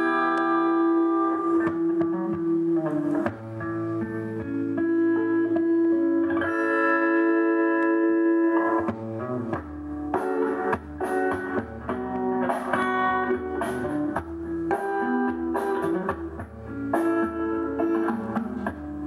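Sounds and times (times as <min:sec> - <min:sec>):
guitar playing: 0:00.0 - 0:19.0.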